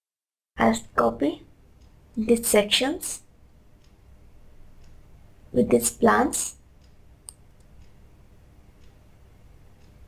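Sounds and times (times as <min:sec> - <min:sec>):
low room hum: 0:00.6 - 0:10.0
faint ticks: 0:06.5 - 0:10.0.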